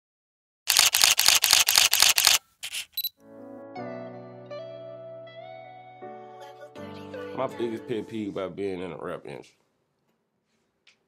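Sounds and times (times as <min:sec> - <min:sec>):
camera shutter bursts: 0:00.7 - 0:03.1.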